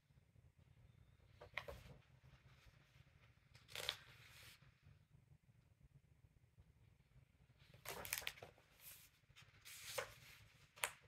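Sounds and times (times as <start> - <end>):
paper page rustling: 7.7 - 11.0.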